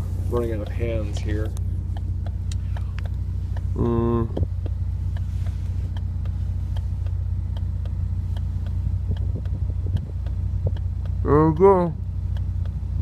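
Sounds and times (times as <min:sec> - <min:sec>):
car engine idling: 0:00.0 - 0:13.0
faint ticks: 0:00.2 - 0:13.0.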